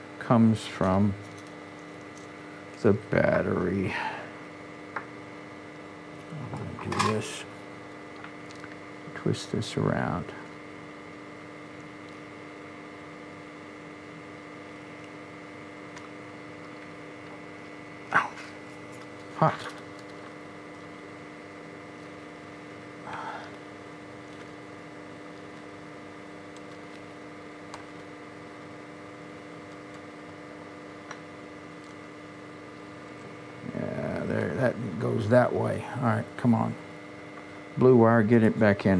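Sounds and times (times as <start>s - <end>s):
steady electrical hum: 0.0s - 38.9s
man's short grunt: 18.1s - 18.6s.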